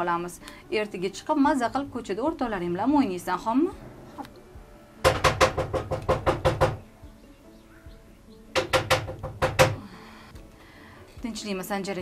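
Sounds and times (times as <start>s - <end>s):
rapid sharp knocking: 5.0s - 6.8s, 8.6s - 9.8s.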